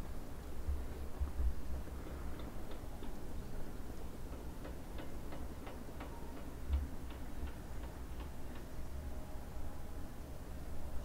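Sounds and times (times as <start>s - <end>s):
low steady rumble: 0.0s - 11.0s
light irregular clicks: 2.2s - 3.2s, 3.9s - 8.7s.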